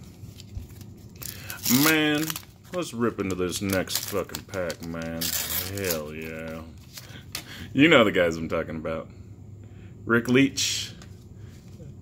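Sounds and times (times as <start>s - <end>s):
waxed paper crinkling tear: 0.2s - 7.4s.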